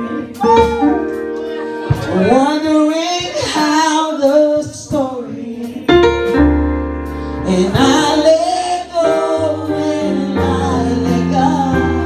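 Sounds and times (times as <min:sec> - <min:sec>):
electronic keyboard chords: 0:00.0 - 0:04.6
woman singing gospel: 0:00.0 - 0:06.0, 0:07.4 - 0:12.0.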